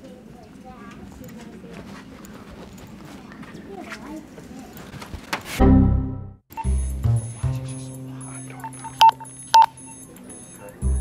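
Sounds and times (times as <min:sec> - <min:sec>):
faint distant voices: 0:00.0 - 0:05.2.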